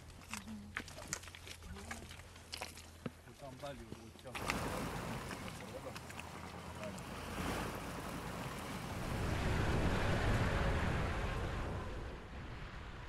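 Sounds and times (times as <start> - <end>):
tracked vehicle driving past: 4.4 - 13.0.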